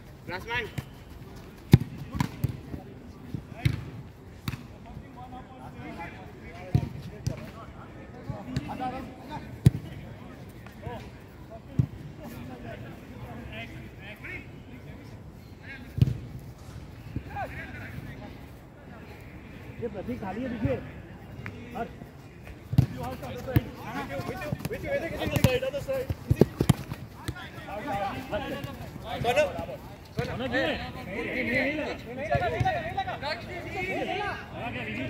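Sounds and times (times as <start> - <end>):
faint players' voices: 0.0 - 35.0
football being kicked: 3.6 - 3.9, 22.7 - 27.5.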